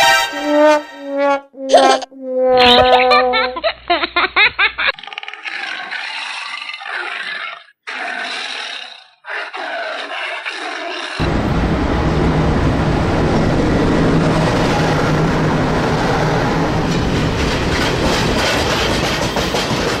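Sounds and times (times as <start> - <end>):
freight train rumbling past: 11.2 - 20.0
train wheel clicks on rail joints: 17.8 - 20.0.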